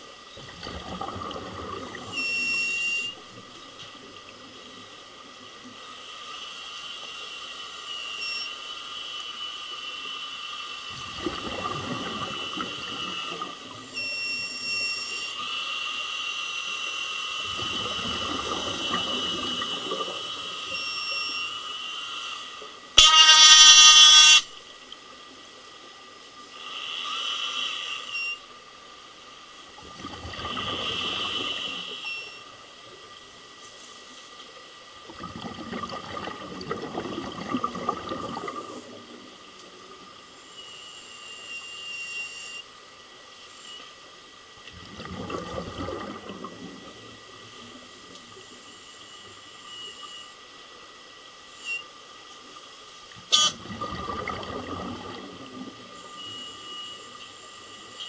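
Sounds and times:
loud horn blast: 23.0s - 24.5s, 53.3s - 53.6s
regulator inhale hiss: 26.5s - 28.3s, 30.6s - 32.3s
bubbling exhaled air: 35.1s - 39.1s, 44.7s - 47.0s, 53.6s - 55.9s.

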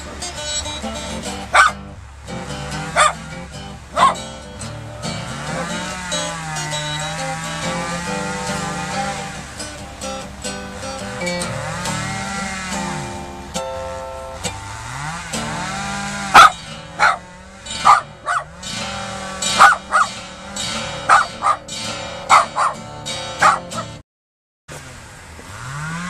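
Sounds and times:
acoustic guitar playing: 0.0s - 24.0s
chainsaw engine revving: 0.0s - 24.0s, 24.7s - 26.0s
small dog barking: 1.5s - 1.9s, 2.8s - 3.2s, 3.9s - 4.3s, 16.3s - 18.5s, 19.5s - 20.2s, 21.0s - 21.7s, 22.3s - 24.0s.

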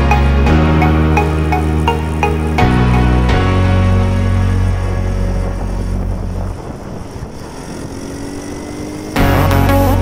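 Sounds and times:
background music: 0.0s - 6.6s, 9.1s - 10.0s
wind rumble on microphone: 3.8s - 9.1s
scooter engine running: 4.2s - 10.0s.

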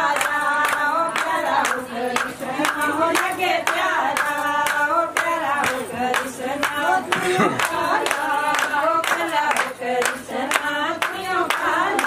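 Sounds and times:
hand clapping: 0.0s - 12.0s
women singing in unison: 0.0s - 12.0s.

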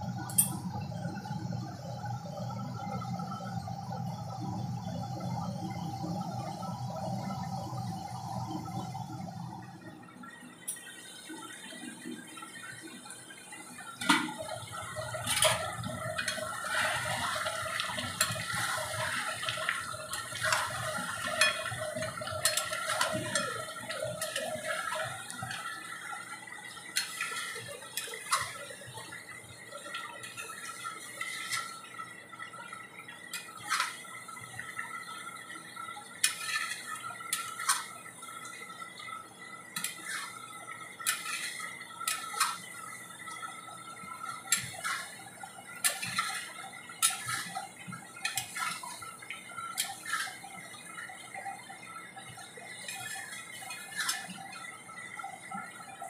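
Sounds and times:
gravy bubbling: 0.0s - 56.0s
metal spatula scraping a pan: 15.2s - 26.0s, 26.9s - 28.7s, 30.2s - 31.8s, 33.3s - 34.0s, 36.2s - 38.0s, 39.8s - 40.4s, 41.0s - 42.8s, 44.2s - 45.2s, 45.8s - 50.5s, 52.8s - 54.6s.

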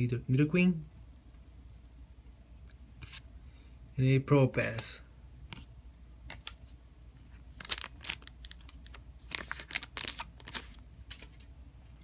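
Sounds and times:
cards clicking and rustling: 6.3s - 6.7s, 7.6s - 11.5s.

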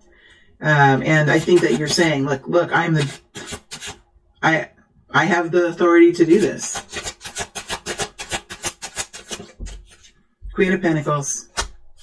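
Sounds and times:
cards being shuffled: 3.0s - 4.0s, 6.4s - 10.2s, 11.5s - 12.0s.

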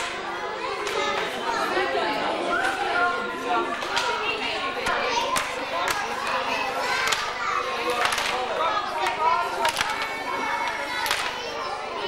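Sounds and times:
children chattering: 0.0s - 12.0s
people talking: 0.0s - 12.0s.

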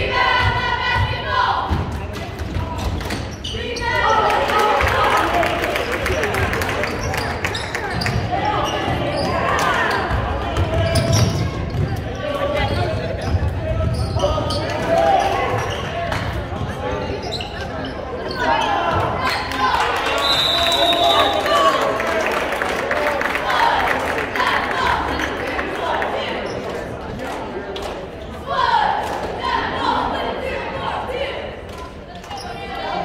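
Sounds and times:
echoing voices: 0.0s - 33.0s
referee's whistle: 20.1s - 21.7s.

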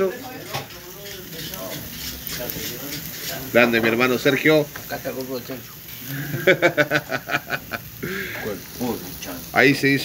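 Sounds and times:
faint background voices: 0.0s - 6.4s.

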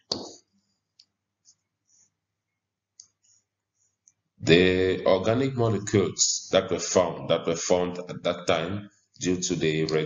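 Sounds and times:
faint small clicks: 3.0s - 3.4s.

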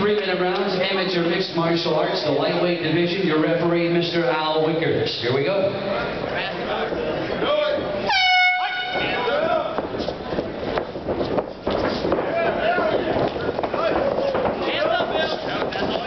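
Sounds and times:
air horn blast: 8.0s - 9.3s.

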